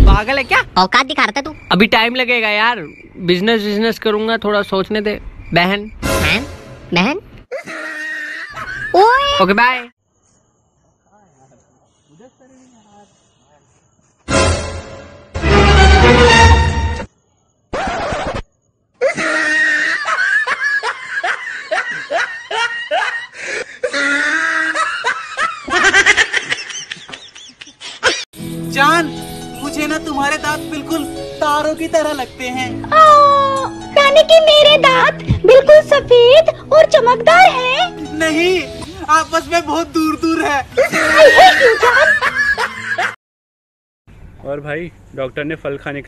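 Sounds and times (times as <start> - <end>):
person laughing: 19.0 - 28.2, 40.8 - 43.2.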